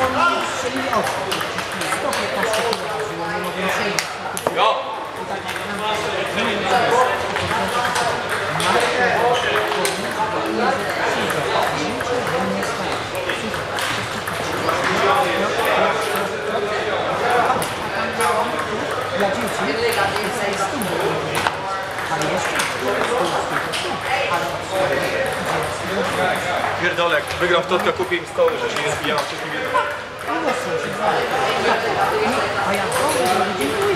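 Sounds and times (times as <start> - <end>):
table tennis balls clicking: 0.9 - 16.4, 17.4 - 33.9.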